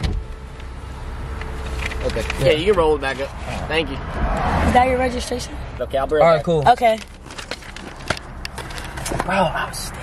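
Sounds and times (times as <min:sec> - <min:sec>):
vehicle rumble: 0:00.0 - 0:10.0.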